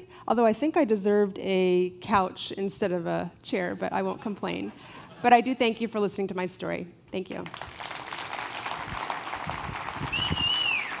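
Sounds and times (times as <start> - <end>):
audience applauding: 7.5 - 11.0
high whistle sliding down: 10.1 - 11.0.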